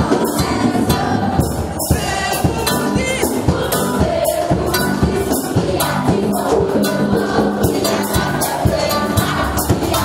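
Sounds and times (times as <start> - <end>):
choir singing gospel music: 0.0 - 10.0
percussion steady beat: 0.0 - 10.0.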